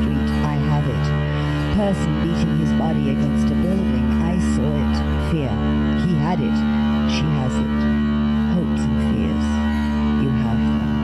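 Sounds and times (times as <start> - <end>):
low drone: 0.0 - 11.0.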